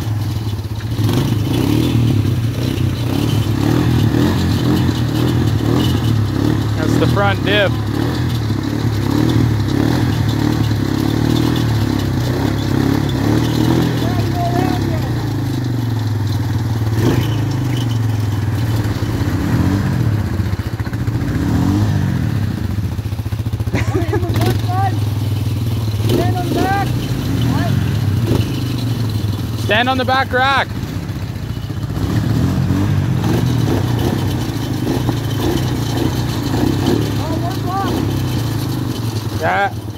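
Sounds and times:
quad engine running: 0.0s - 39.9s
voices: 6.7s - 8.4s, 12.0s - 15.8s, 23.7s - 25.1s, 26.0s - 28.4s, 29.6s - 30.7s, 37.0s - 39.9s.

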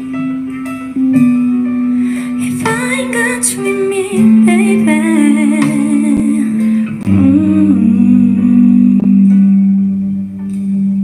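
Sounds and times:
women singing long notes: 2.6s - 9.8s.

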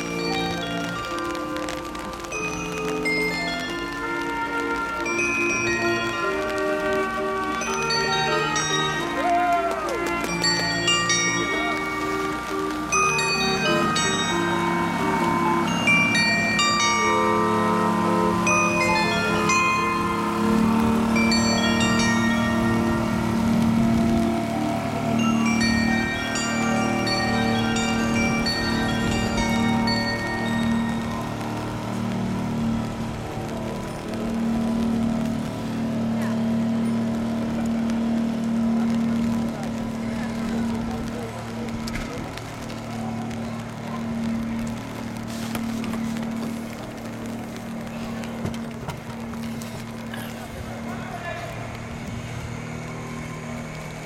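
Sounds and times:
carillon bells playing a melody: 0.0s - 32.7s
boat motor droning: 0.0s - 54.0s.

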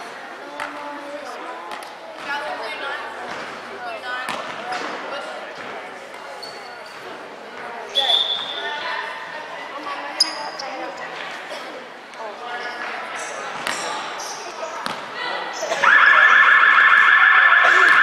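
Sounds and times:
voices of players and spectators: 0.0s - 18.0s.

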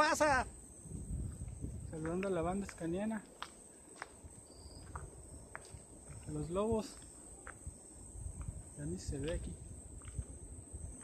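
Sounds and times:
faint insects chirring: 0.0s - 11.0s.

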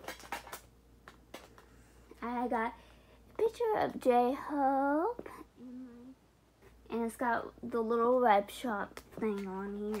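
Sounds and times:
cd packaging clicks and rustles: 0.0s - 1.7s.

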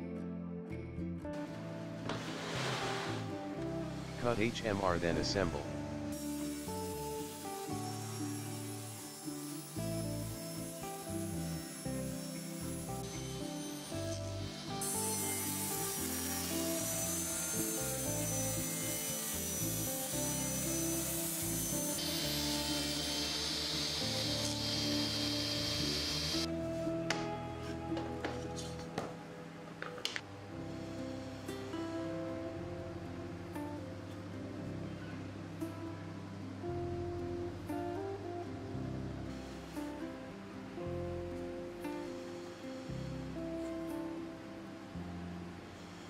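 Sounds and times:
table saw whine: 2.2s - 26.6s
blade cutting hiss: 6.1s - 26.5s.

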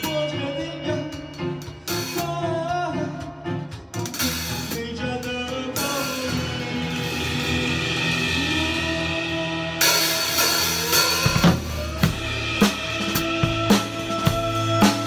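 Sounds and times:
drum kit beat: 0.0s - 15.0s
pop backing track: 0.0s - 15.0s.

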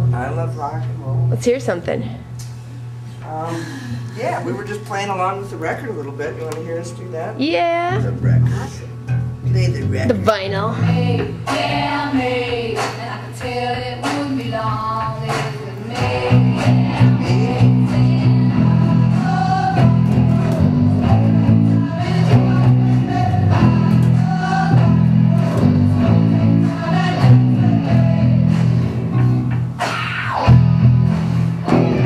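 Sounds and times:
electric bass guitars playing: 0.0s - 0.6s, 7.5s - 12.6s, 15.2s - 32.0s
rock record: 7.4s - 32.0s
person singing: 10.8s - 28.7s.

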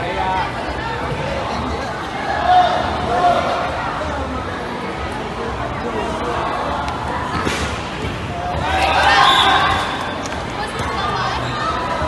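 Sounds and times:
spectators shouting and cheering: 2.1s - 4.0s, 5.9s - 12.0s.

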